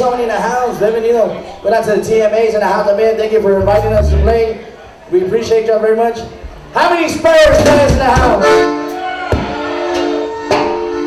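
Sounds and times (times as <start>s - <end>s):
sharp drum hits: 3.6s - 4.5s
live band sustained chord: 3.6s - 4.7s.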